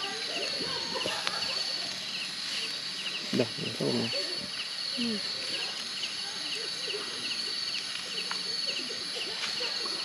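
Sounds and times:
night insects chirping: 0:00.0 - 0:10.0.

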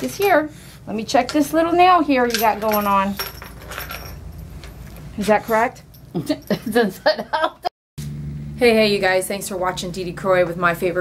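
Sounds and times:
low steady hum: 0:00.0 - 0:11.0
metallic jingling and clinking: 0:01.9 - 0:06.8.

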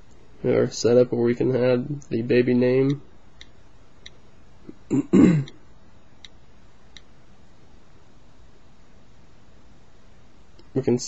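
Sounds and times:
man coughing: 0:04.7 - 0:05.6.

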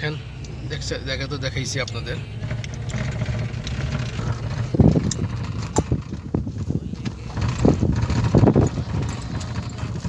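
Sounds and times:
low vehicle rumble: 0:00.0 - 0:10.0.

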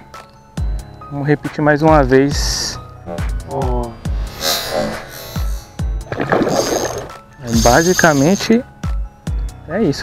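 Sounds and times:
electronic music with steady beat: 0:04.2 - 0:08.5
fish splashing water: 0:06.0 - 0:08.1.

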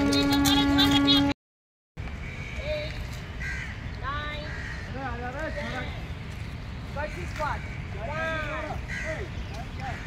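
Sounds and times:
crow cawing: 0:03.4 - 0:05.8, 0:07.1 - 0:09.3.

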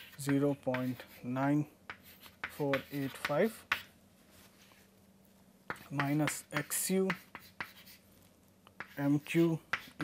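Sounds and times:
chalk tapping and scratching: 0:00.0 - 0:04.8, 0:05.7 - 0:10.0.

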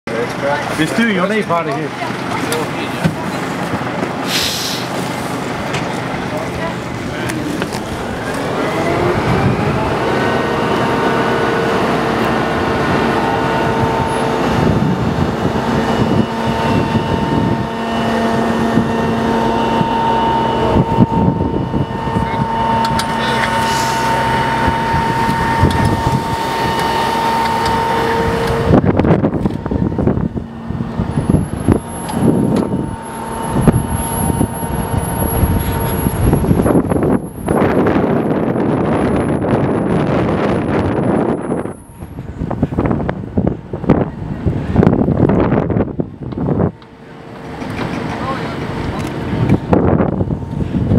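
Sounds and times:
hydraulic whine: 0:00.6 - 0:50.9
wind gusting against microphone: 0:00.6 - 0:50.9.

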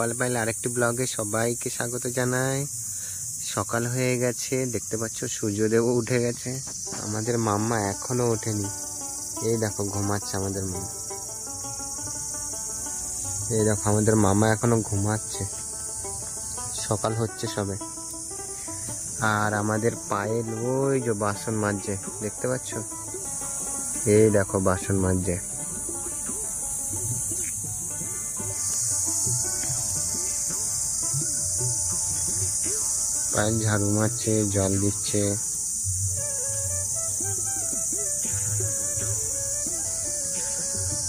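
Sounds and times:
high-pitched insect drone: 0:00.0 - 0:41.0
faint music: 0:03.4 - 0:41.0.

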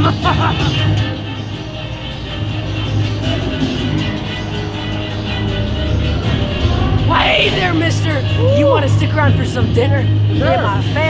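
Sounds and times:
low droning hum: 0:00.9 - 0:10.5.

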